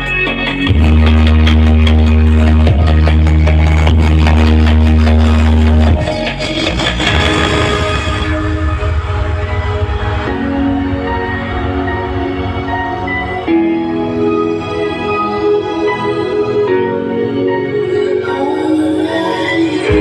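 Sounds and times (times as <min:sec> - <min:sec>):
heavy sub-bass note: 0:00.0 - 0:14.3
loud music over sound system: 0:00.0 - 0:20.0.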